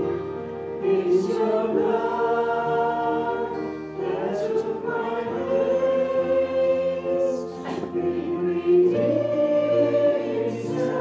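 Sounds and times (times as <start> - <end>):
congregation singing: 0.0 - 11.0.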